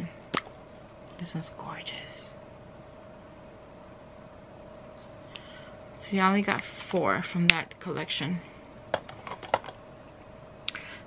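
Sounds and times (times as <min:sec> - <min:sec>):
plastic cases clicking and tapping: 0:08.9 - 0:09.8.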